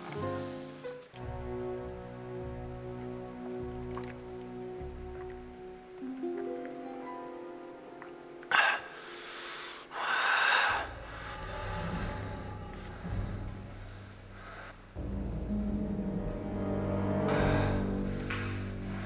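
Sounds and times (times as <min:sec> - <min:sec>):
music with low held notes: 0:00.0 - 0:09.4, 0:10.8 - 0:19.0
loud breaths close to microphone: 0:08.5 - 0:15.0.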